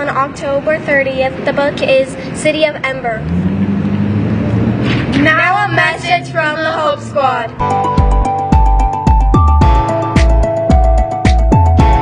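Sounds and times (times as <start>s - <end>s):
vehicle engine humming: 0.0s - 9.2s.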